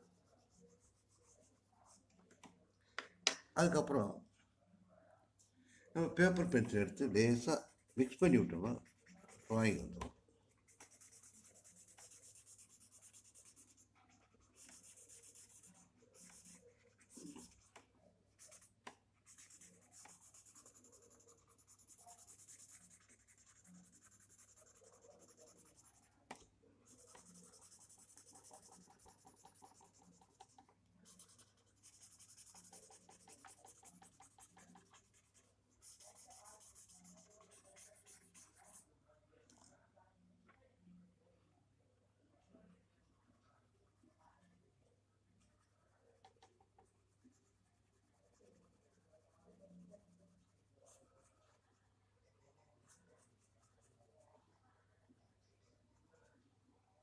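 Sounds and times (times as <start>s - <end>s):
pencil scratching on paper: 0.0s - 2.1s, 6.4s - 10.1s, 10.7s - 17.8s, 18.4s - 38.8s, 46.2s - 54.0s.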